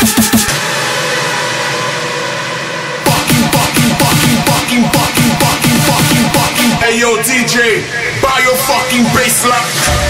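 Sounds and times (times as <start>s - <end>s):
synth noise wash with held tones: 0.0s - 4.5s
electronic dance beat: 0.0s - 10.0s.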